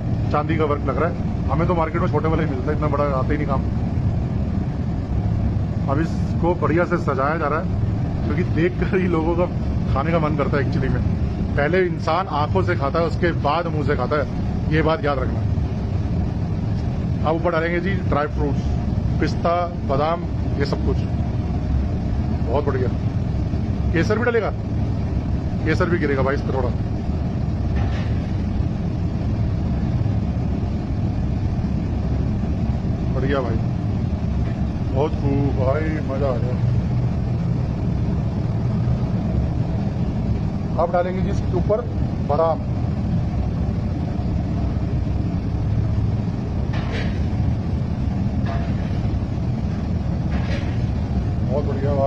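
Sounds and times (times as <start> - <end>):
low background rumble: 0.0 - 52.0.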